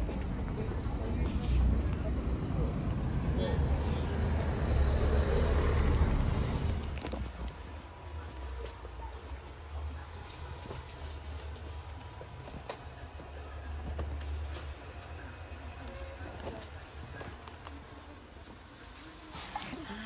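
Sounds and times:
car road and engine noise: 0.0s - 19.3s.

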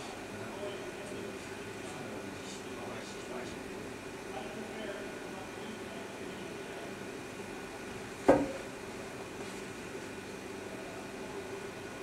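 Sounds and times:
machinery hum: 0.0s - 12.0s
sharp knock: 8.3s - 8.6s.

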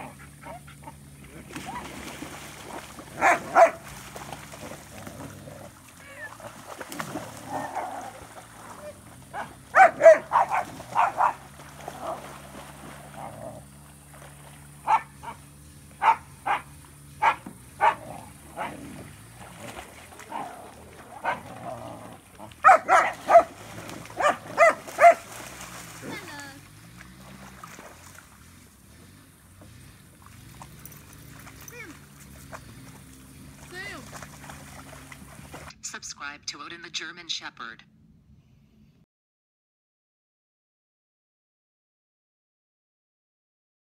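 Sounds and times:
dog barking: 3.2s - 3.8s, 9.3s - 11.4s, 14.8s - 15.4s, 16.0s - 18.8s, 21.2s - 21.4s, 22.6s - 23.6s, 24.2s - 25.3s.

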